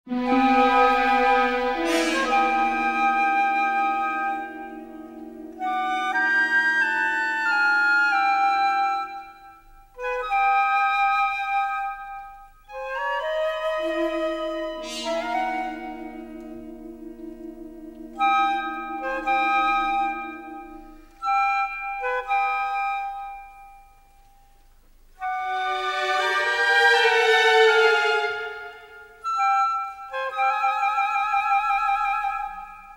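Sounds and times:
long low wavering note: 0.1 - 7.4, 14.6 - 21.1
orchestral music: 0.1 - 9.4, 12.6 - 24.0, 25.2 - 30.3
woodwind phrases: 0.1 - 32.9.

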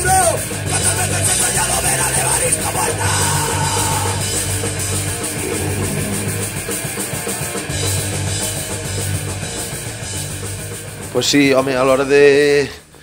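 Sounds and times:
electric guitars: 5.0 - 7.7.

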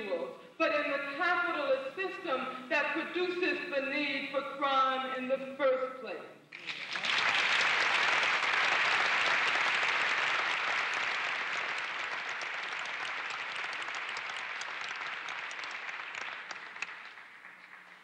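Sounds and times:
audience applauding: 6.5 - 18.0.

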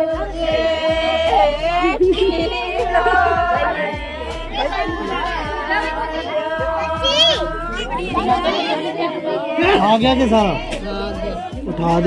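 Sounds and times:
overlapping chatter of voices: 0.0 - 12.0.

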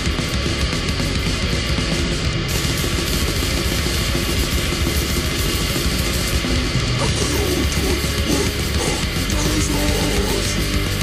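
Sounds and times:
extreme metal band playing: 0.0 - 11.0.

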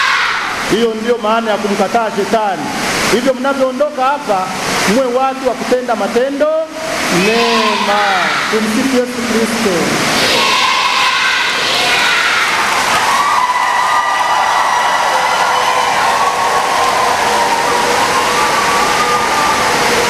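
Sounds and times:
high voices: 6.9 - 13.2
crowd of children clapping: 11.7 - 20.0.

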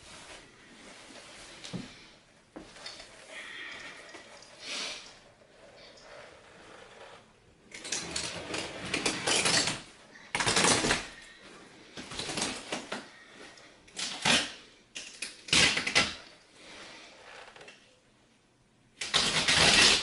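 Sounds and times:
carpet dragging and scraping: 0.0 - 3.3.

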